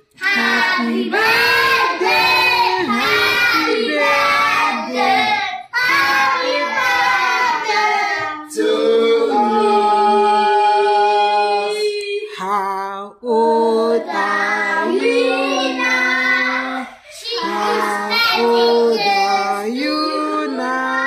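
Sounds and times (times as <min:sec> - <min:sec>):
children singing: 0:00.0 - 0:12.5, 0:13.2 - 0:21.0.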